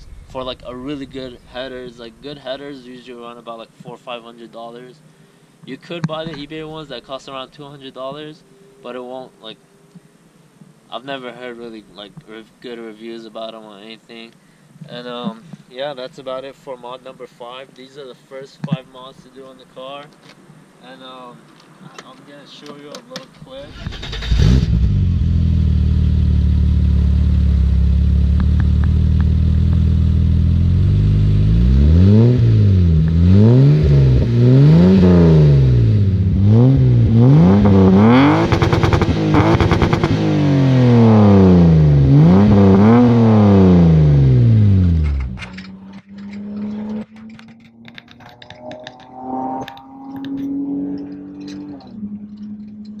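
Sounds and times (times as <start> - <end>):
quiet engine running: 23.8 - 53.0
car engine idling and revving: 23.9 - 53.0.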